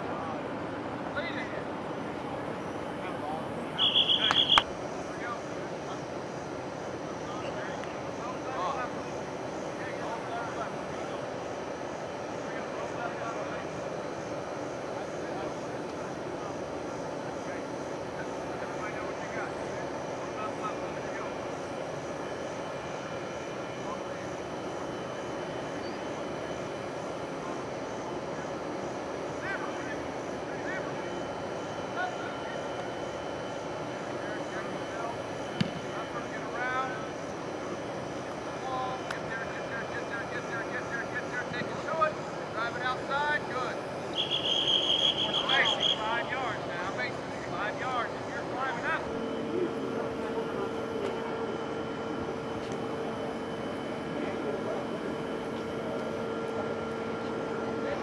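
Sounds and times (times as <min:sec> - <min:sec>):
distant voices and calls: 0:00.0 - 0:58.0
low outdoor drone: 0:00.0 - 0:58.0.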